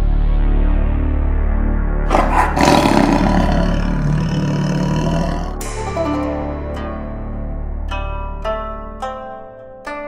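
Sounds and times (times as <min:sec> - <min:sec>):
background music: 0:00.0 - 0:09.4
tiger roaring: 0:02.1 - 0:05.6.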